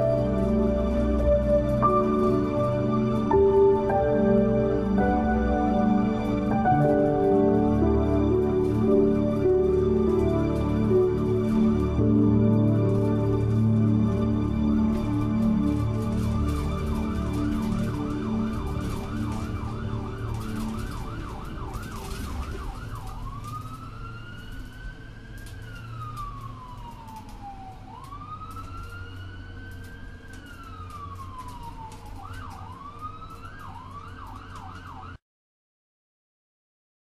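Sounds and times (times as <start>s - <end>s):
music: 0.0s - 23.2s
electronic siren: 0.0s - 35.2s.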